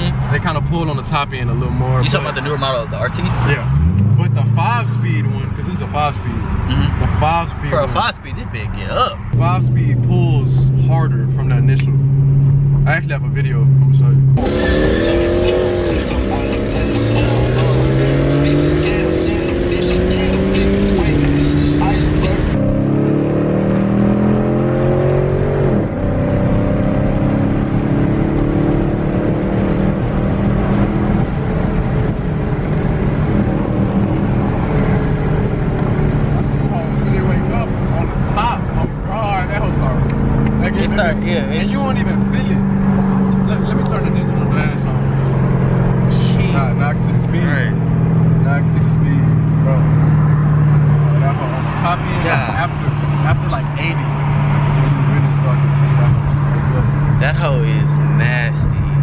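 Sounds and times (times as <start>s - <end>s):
cars accelerating hard: 0.0s - 59.0s
engine cruising with low drone: 9.3s - 59.0s.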